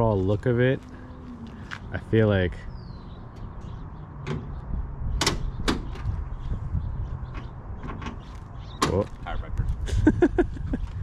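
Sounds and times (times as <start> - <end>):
latch clicks: 5.2 - 6.1.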